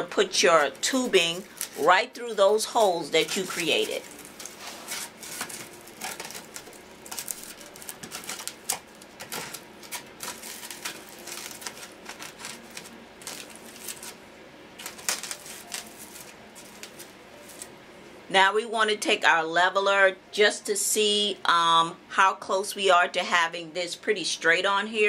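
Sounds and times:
tubing scratching in foam: 0.6s - 8.5s.

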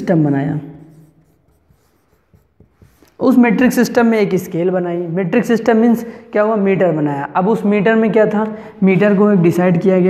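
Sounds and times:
marker writing on whiteboard: 0.0s - 3.7s.

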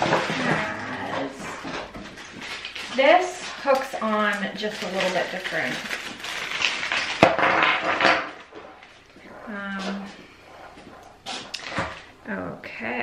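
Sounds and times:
plastic bag crinkling: 0.0s - 12.2s.

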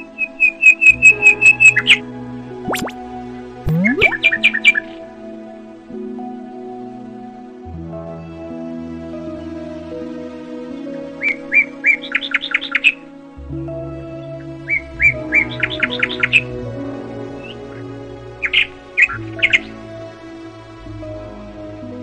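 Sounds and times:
soft background music: 0.0s - 22.0s.

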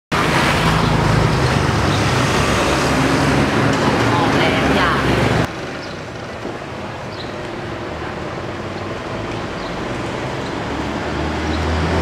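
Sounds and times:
street traffic: 0.1s - 12.0s
vehicle engine running: 0.2s - 11.1s
voices: 3.7s - 5.5s.

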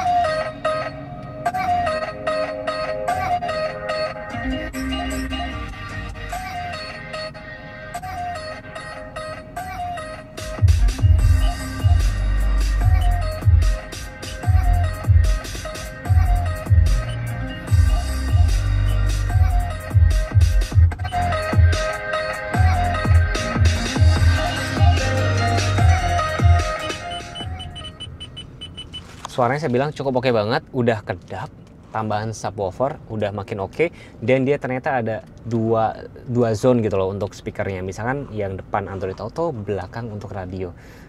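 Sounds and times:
electronic music in a car: 0.0s - 29.1s
heavy bass beats: 10.4s - 22.0s, 22.6s - 29.0s
short high beeps: 27.0s - 29.1s.

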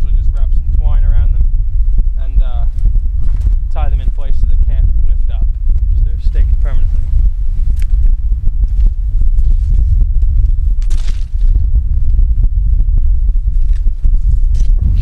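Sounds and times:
wind buffeting microphone: 0.0s - 15.0s
dry brush crackling and rustling: 7.6s - 11.6s.

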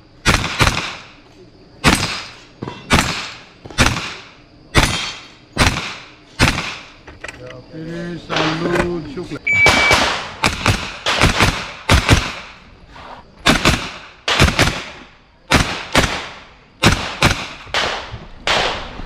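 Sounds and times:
pistol shots with echo: 0.2s - 1.2s, 1.8s - 7.0s, 9.6s - 12.6s, 13.4s - 19.0s
shot timer beep: 9.5s - 10.0s.

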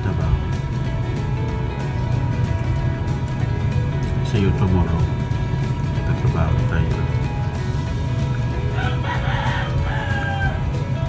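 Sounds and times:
background music: 0.0s - 11.0s
rooster crowing: 8.7s - 10.8s.

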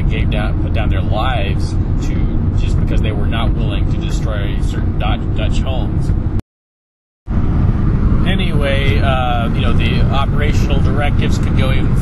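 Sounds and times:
man talking: 0.0s - 6.1s, 8.2s - 12.0s
low rumbling background noise: 0.0s - 6.4s, 7.3s - 12.0s.

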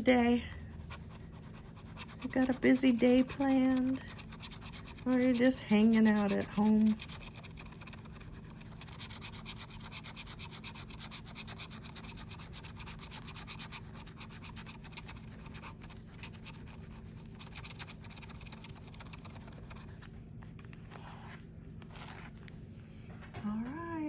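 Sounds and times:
scratching lottery ticket coating: 0.2s - 20.2s.

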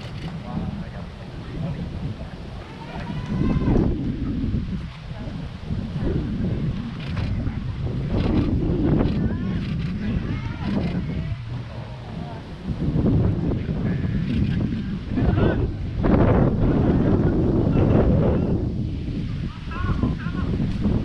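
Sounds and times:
distant voices calling out: 0.0s - 21.0s
wind buffeting microphone: 0.0s - 21.0s.

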